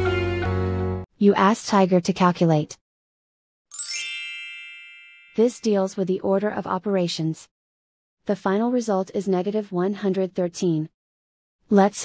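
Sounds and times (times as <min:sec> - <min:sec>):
chime ding: 0:03.7 - 0:05.6.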